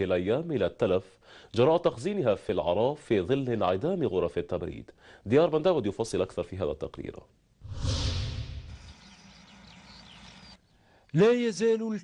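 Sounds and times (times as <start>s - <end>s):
low rumbling swoosh: 7.6s - 9.0s
birds chirping: 8.3s - 11.0s.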